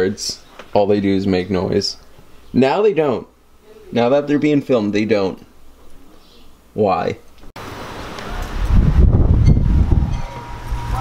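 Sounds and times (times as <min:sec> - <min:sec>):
wind buffeting microphone: 0:08.3 - 0:11.0.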